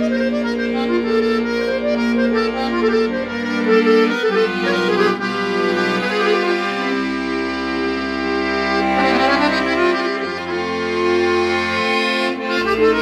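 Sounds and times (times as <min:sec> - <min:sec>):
button accordion melody: 0:00.0 - 0:13.0.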